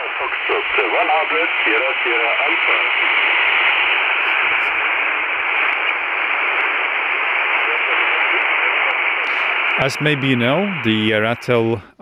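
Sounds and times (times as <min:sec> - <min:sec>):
radio band noise hiss: 0:00.0 - 0:12.0.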